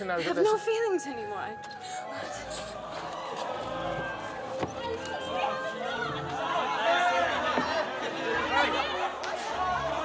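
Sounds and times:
group of voices chattering: 0:00.0 - 0:10.0.

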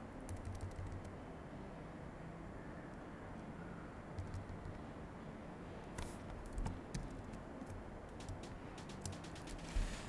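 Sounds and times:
mouse and keyboard clicks: 0:00.3 - 0:01.1.

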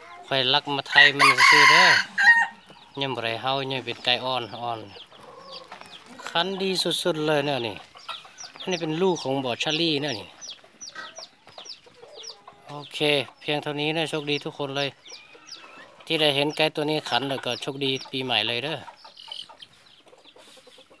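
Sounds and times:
chickens chirping and clucking: 0:00.0 - 0:21.0
man speaking: 0:00.3 - 0:02.2, 0:03.0 - 0:05.0, 0:06.3 - 0:07.8, 0:08.6 - 0:10.3, 0:12.7 - 0:15.0, 0:16.1 - 0:18.9.

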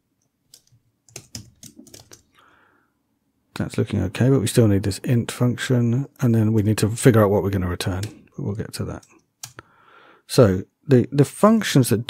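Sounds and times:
computer keyboard typing: 0:00.5 - 0:02.3, 0:08.9 - 0:09.6.

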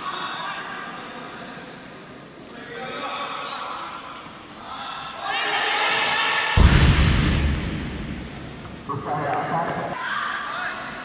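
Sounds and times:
people shouting: 0:04.7 - 0:06.7.

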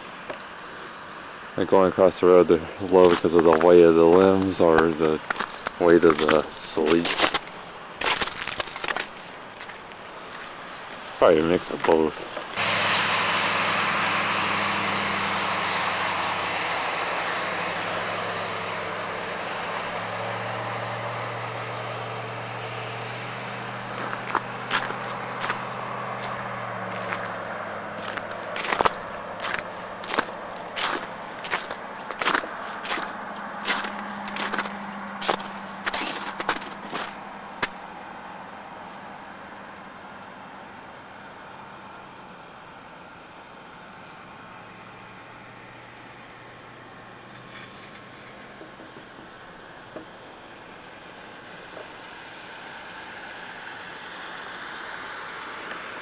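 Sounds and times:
vehicle passing on wet road: 0:00.0 - 0:56.0
footsteps crunching on snow: 0:01.7 - 0:12.6, 0:23.8 - 0:37.9.

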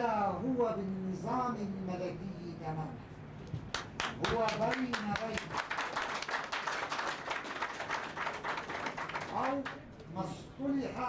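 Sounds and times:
audience applauding: 0:03.7 - 0:09.9.

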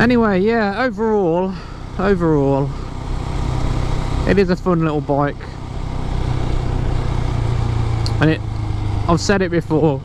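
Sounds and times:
motorcycle engine running: 0:00.0 - 0:10.0
road and air noise hiss: 0:00.0 - 0:10.0.

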